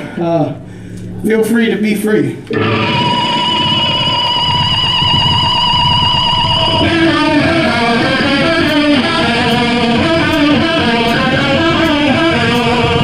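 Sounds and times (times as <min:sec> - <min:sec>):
amplified electric guitar: 0:02.4 - 0:13.0.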